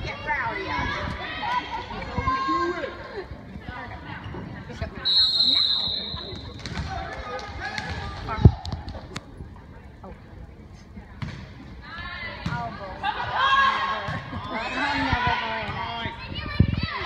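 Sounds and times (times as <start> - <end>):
referee's whistle: 5.0 - 6.5.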